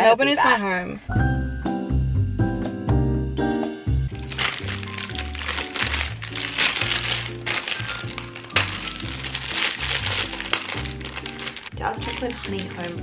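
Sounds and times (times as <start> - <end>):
background music with bass line: 1.1 - 11.2
plastic snack bag crinkling: 4.0 - 13.0
sharp crack: 4.3 - 11.7.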